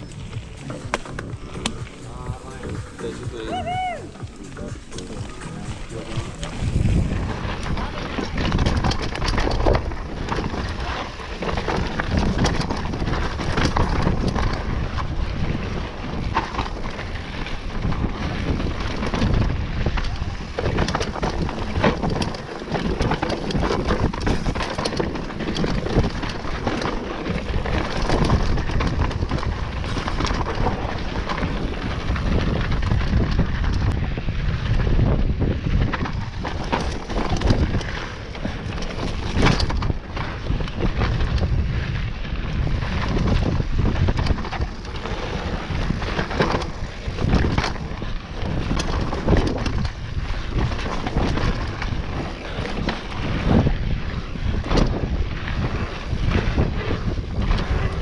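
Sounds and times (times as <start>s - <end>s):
bike clanking and rattling: 0.0s - 58.0s
tyres on dirt: 0.0s - 58.0s
wind rush on microphone: 0.0s - 58.0s.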